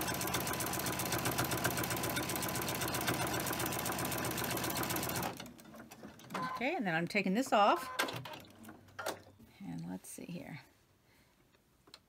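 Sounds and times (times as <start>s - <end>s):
sewing machine stitching: 0.0s - 6.6s.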